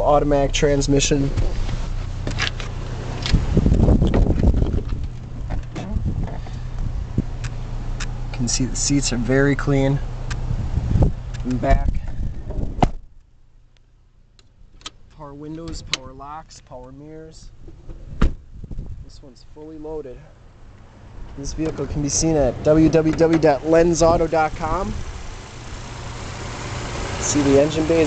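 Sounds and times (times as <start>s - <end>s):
car engine idling: 0.0s - 16.0s, 19.9s - 28.0s.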